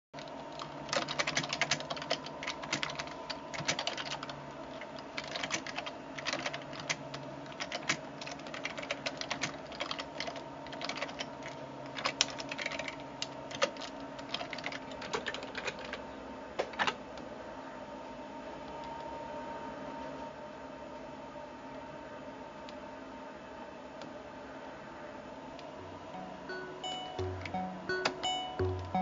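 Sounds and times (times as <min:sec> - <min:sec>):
computer keyboard typing: 0:00.2 - 0:16.0, 0:26.5 - 0:29.0
steady hum: 0:00.2 - 0:29.0.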